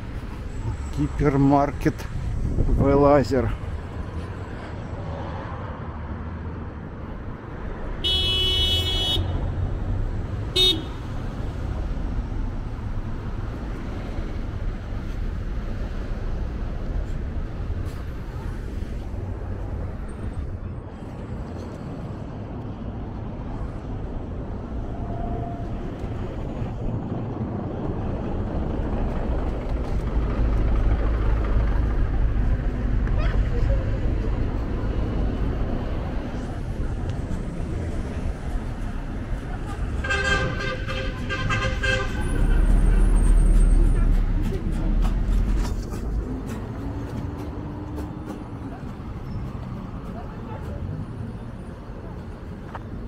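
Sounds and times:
city traffic rumble: 0.0 - 53.0
vehicle horn toots: 8.0 - 9.4, 10.5 - 11.0, 40.0 - 42.6.

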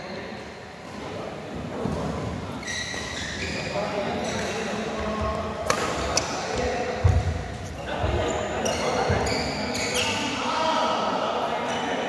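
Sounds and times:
rackets striking shuttlecock: 5.6 - 6.3.

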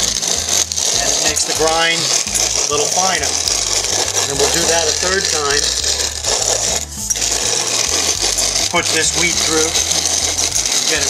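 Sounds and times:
hand-cranked grain mill grinding: 0.0 - 11.0.

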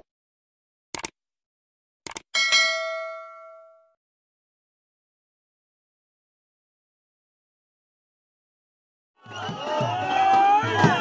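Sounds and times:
mouse clicks: 1.0 - 1.2, 2.1 - 2.3
bright bell ding: 2.4 - 4.0.

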